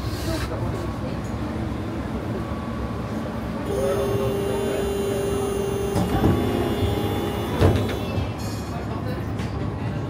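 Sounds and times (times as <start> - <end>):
tram doors closing: 0.0 - 10.0
tram interior rumble: 0.0 - 10.0.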